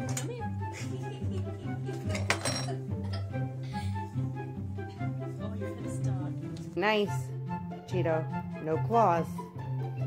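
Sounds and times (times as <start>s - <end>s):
background music with steady beat: 0.0s - 10.0s
jar clinking on hard surface: 2.1s - 2.8s.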